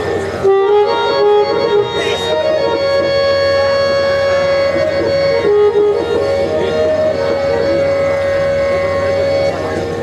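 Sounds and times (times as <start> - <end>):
harmonium melody: 0.0 - 10.0.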